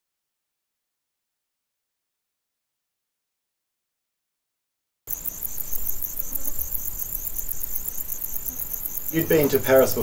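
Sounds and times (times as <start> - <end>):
insects chirping: 5.1 - 10.0.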